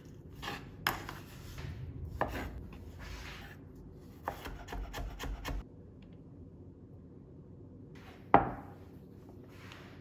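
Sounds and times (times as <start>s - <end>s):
knife slicing scrape: 0.0s - 1.4s.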